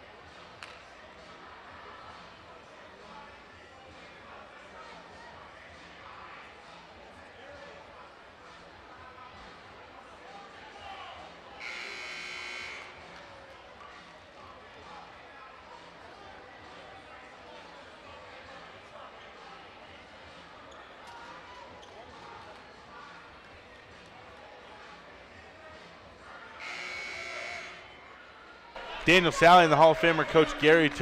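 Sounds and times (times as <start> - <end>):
scoreboard horn buzz: 11.6 - 13.0, 26.6 - 27.8.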